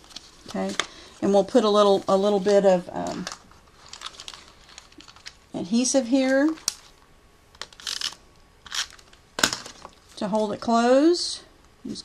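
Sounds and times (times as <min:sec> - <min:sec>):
cardstock rustling: 0:00.0 - 0:05.4.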